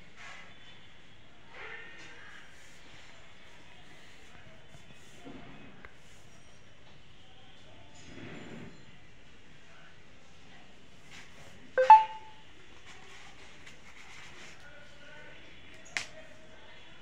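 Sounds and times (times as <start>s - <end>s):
short ringing ping: 11.8s - 12.3s.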